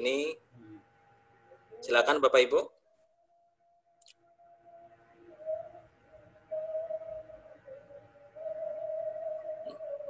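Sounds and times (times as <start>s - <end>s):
wavering mid-pitched tone: 4.2s - 10.0s.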